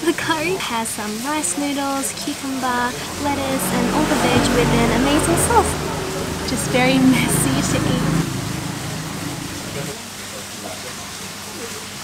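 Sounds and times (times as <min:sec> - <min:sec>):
faint voices: 0:00.0 - 0:11.7
fountain water rushing: 0:00.0 - 0:12.0.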